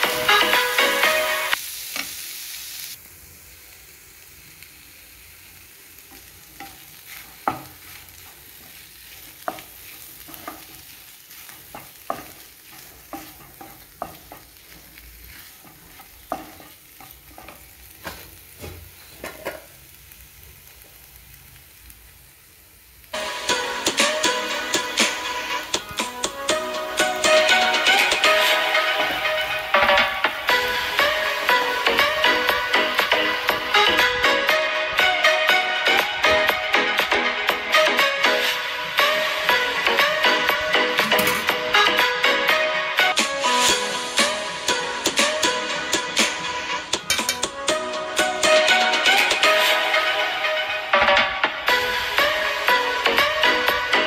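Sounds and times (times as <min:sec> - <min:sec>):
background music: 0:00.0 - 0:01.6, 0:23.2 - 0:54.0
soft sizzle of frying: 0:00.0 - 0:54.0
wooden spatula scraping pan: 0:06.6 - 0:19.7.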